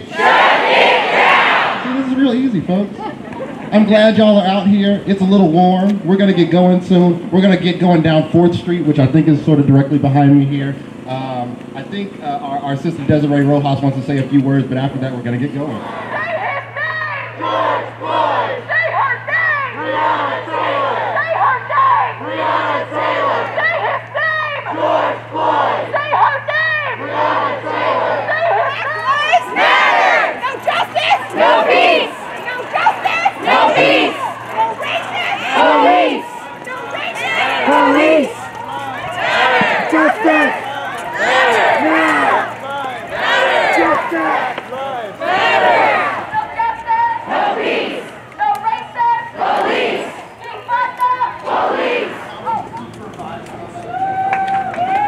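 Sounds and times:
crowd chanting and shouting: 0.0s - 2.4s, 15.6s - 54.2s
low steady hum: 0.0s - 50.5s.

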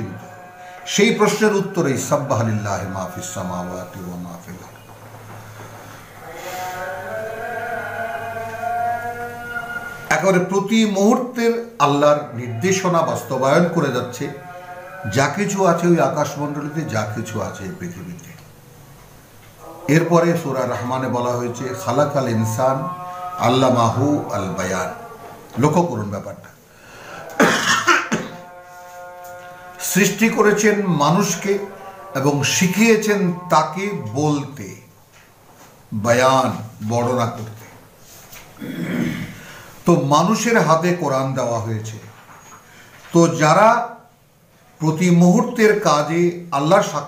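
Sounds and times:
man chanting a held note: 0.0s - 4.9s, 6.2s - 18.5s, 19.6s - 35.0s, 35.9s - 37.8s
steady hum: 0.0s - 47.0s
man coughing: 27.3s - 28.4s, 38.6s - 39.4s.

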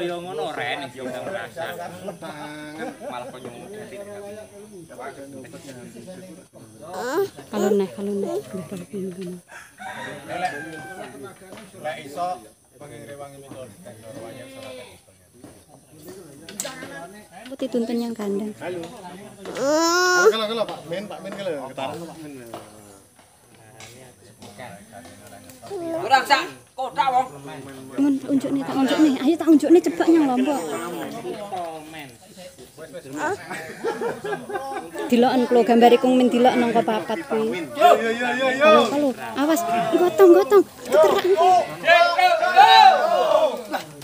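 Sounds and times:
men talking: 0.0s - 7.7s, 9.8s - 17.4s, 18.7s - 35.6s, 36.3s - 44.0s
rooster crowing: 9.4s - 11.3s, 37.8s - 39.5s.

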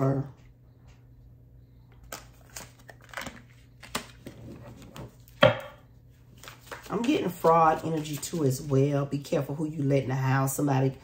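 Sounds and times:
cards being shuffled: 2.0s - 4.4s, 6.3s - 8.7s.

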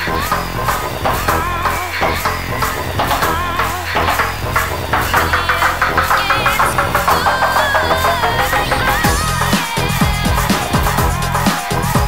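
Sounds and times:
breakbeat dance music: 0.0s - 12.0s.

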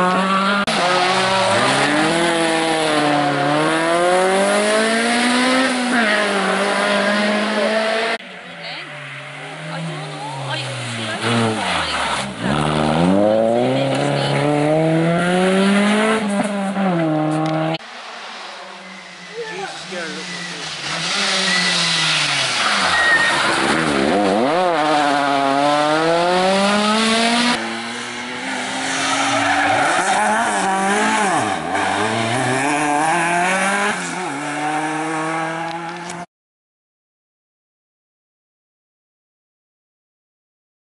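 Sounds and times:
rally car engines revving: 0.0s - 36.3s.

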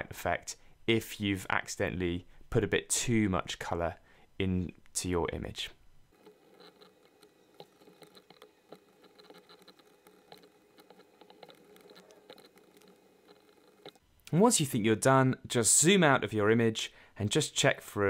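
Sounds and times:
computer mouse clicking: 6.2s - 14.0s.

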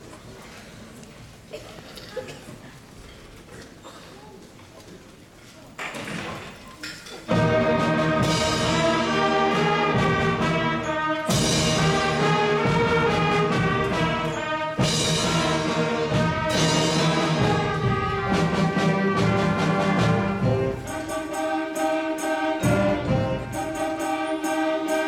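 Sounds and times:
concert band playing chords: 7.3s - 25.0s.

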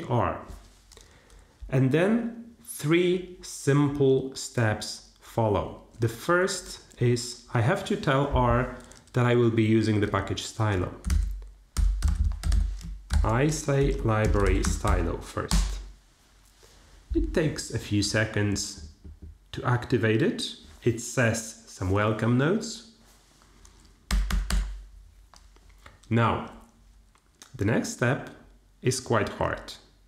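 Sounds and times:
keyboard typing: 11.0s - 15.8s, 24.1s - 24.8s
laptop key presses: 11.0s - 15.8s, 24.1s - 24.8s.

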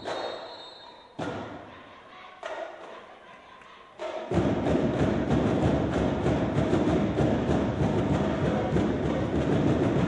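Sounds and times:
marching drumline strikes: 4.0s - 10.0s.

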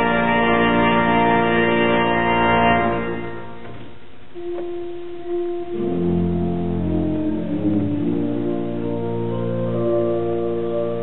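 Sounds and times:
held organ note: 0.0s - 3.8s, 4.4s - 11.0s
pipe organ chords: 0.0s - 11.0s.

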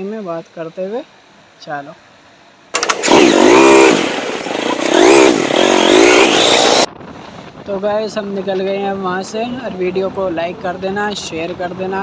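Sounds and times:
motorcycle engine revving: 2.8s - 6.9s.

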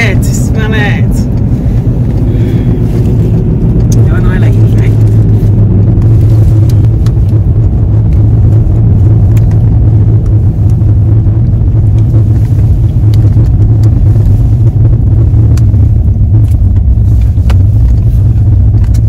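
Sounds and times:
car cabin rumble: 0.0s - 19.0s.

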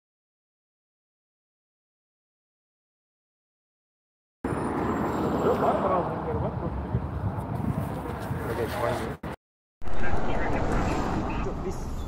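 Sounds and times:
outdoor street noise: 4.4s - 12.0s.

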